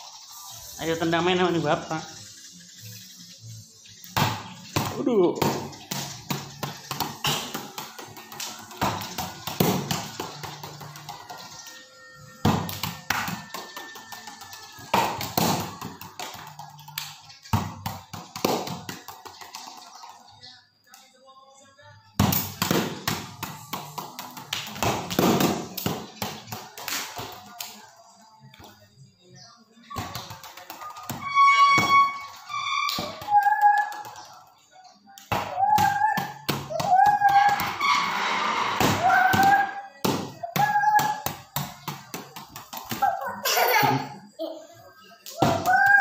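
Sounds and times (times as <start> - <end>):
background music: 0.0 - 20.0, 29.8 - 34.6.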